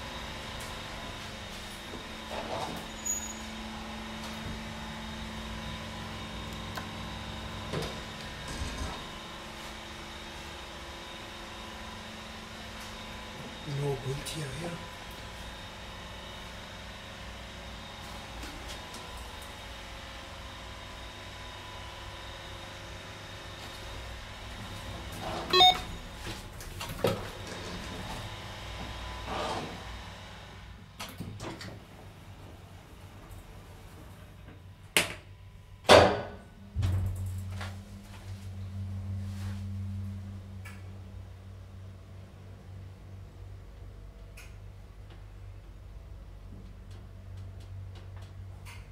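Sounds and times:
elevator machine hum with whine: 0.0 - 48.9
low electric hum: 0.0 - 48.9.

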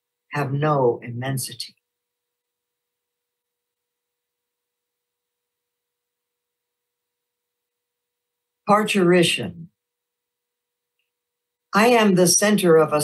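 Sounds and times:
faint steady tone: 0.9 - 12.0.

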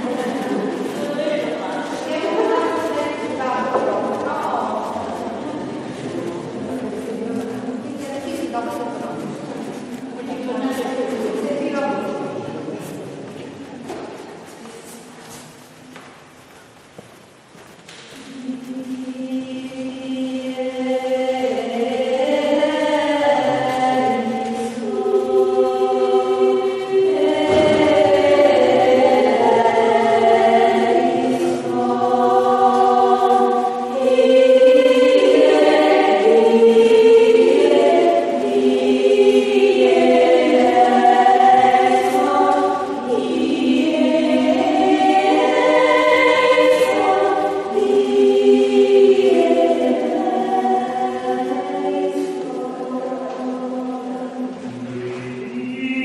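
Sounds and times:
choir singing unaccompanied: 0.0 - 13.2, 18.0 - 56.0.

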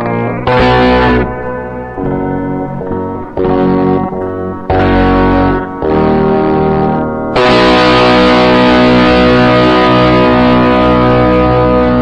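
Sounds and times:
distorted electric guitar chords: 0.0 - 12.0
low bass: 0.0 - 12.0.

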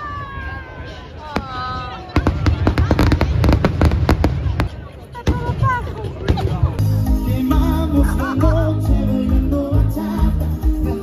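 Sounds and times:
fireworks bangs and crackles: 1.3 - 6.8.

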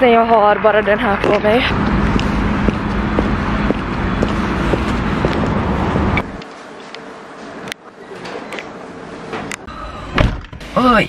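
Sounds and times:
traffic hum: 0.0 - 10.7
shop interior hum: 0.0 - 11.0
boot footsteps on pavement: 1.2 - 6.4.

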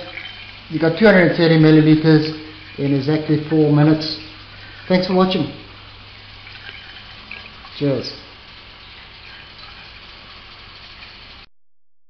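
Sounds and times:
fountain pump hum: 0.0 - 11.5
running water hiss: 0.0 - 11.5.

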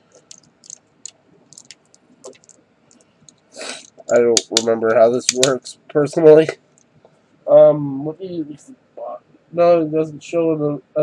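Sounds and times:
plastic clicks of toy joints: 3.3 - 5.6
breathy hiss: 3.5 - 4.0.

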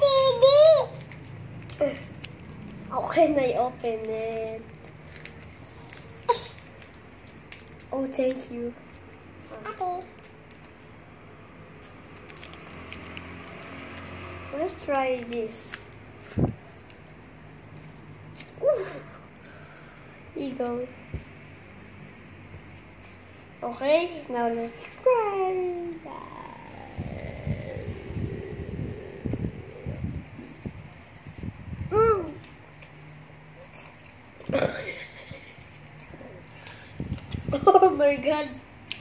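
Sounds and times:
steady low hum: 15.9 - 39.0
child humming: 26.0 - 30.5.

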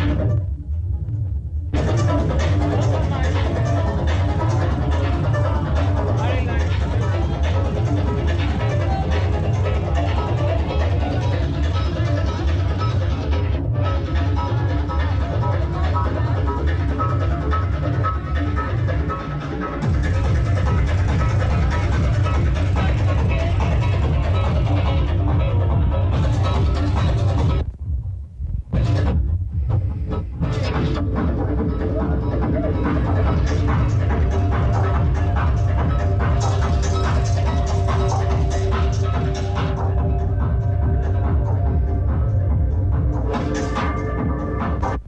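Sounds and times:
electronic dance music: 0.0 - 45.0
techno with heavy kick and bass: 0.0 - 45.0.

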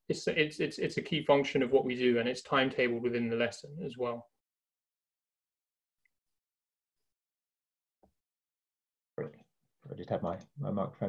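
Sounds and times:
man speaking: 0.0 - 4.3, 9.2 - 11.0.

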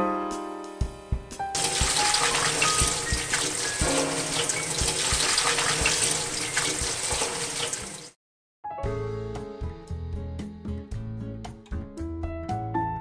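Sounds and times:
tap water running into a strainer: 1.6 - 8.2.

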